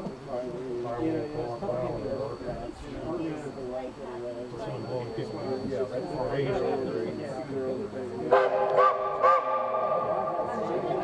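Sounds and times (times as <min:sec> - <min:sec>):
steam locomotive whistle: 0:08.3 - 0:10.5.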